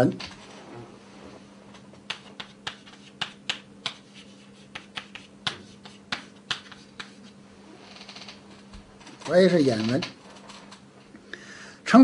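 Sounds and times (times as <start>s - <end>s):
chalk tapping on blackboard: 2.0s - 7.4s.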